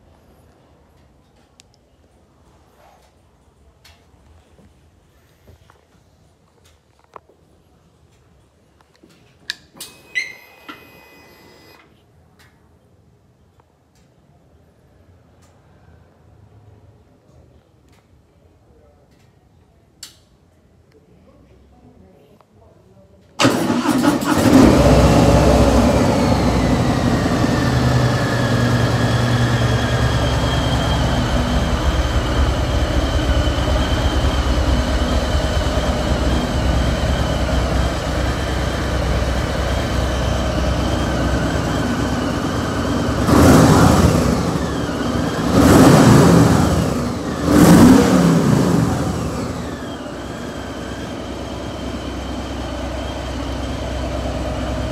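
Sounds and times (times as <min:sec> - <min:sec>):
motorcycle engine revving: 0:23.4 - 0:54.9
motorcycle engine starting: 0:23.4 - 0:54.9
motorcycle engine idling: 0:25.9 - 0:45.5, 0:48.4 - 0:54.9.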